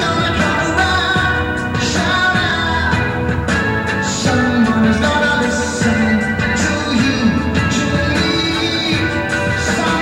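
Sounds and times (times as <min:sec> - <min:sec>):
rock band playing live: 0:00.0 - 0:10.0.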